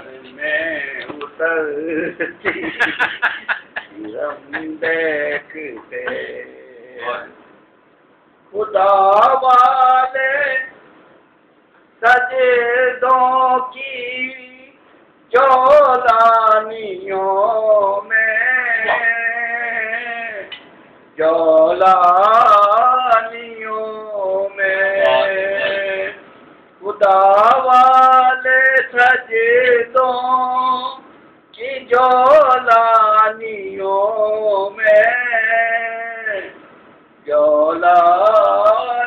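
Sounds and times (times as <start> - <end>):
man singing long note: 23.3 - 26.2.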